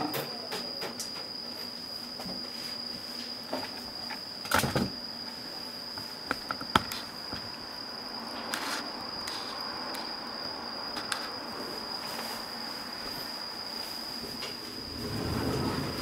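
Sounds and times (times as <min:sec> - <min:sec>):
steady high-pitched whine: 0:00.0 - 0:16.0.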